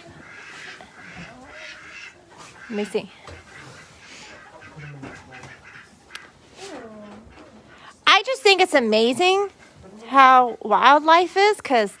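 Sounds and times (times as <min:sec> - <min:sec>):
chickens clucking: 0:00.0 - 0:08.0.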